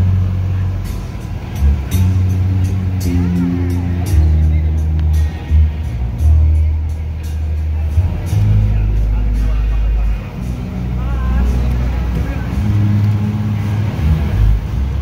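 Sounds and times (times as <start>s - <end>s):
distant deep bass notes: 0.0s - 15.0s.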